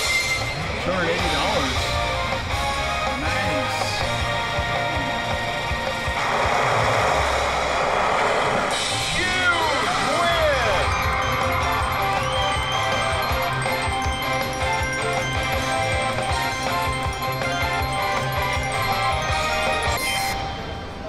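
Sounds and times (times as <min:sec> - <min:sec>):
slot machine win jingle: 0:00.0 - 0:06.4, 0:08.8 - 0:21.0
burst of noise: 0:06.0 - 0:09.2.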